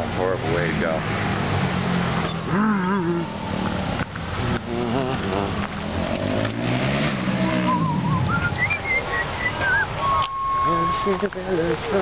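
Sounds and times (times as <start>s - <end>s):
indistinct voices talking: 7.1s - 12.0s.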